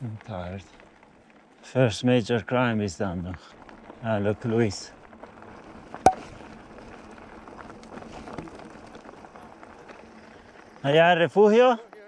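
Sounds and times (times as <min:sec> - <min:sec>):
bicycle tyres on gravel: 0:00.0 - 0:12.0
wind: 0:00.0 - 0:12.0.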